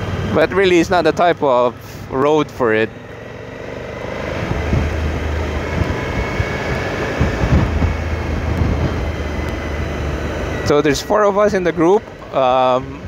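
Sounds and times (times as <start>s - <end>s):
motorcycle engine running: 0.0s - 13.0s
wind rushing over microphone: 3.9s - 10.9s.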